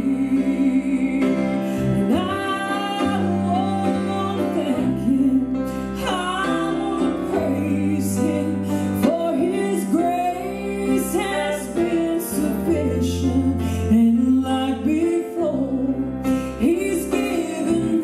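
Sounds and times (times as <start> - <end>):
woman singing gospel song: 0.0 - 18.0.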